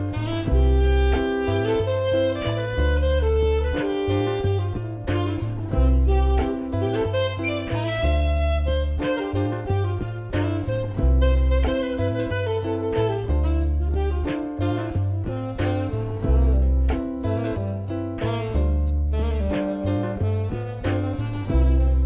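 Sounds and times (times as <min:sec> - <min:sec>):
alto saxophone jazz melody: 0:00.0 - 0:22.0
bass line: 0:00.0 - 0:22.0
plucked strings: 0:00.0 - 0:22.0.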